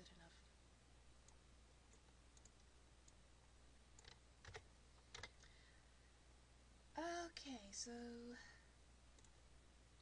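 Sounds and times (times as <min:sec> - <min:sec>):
low steady hum: 0:00.0 - 0:10.0
computer mouse clicks: 0:01.2 - 0:03.2, 0:04.0 - 0:05.5, 0:09.2 - 0:09.4.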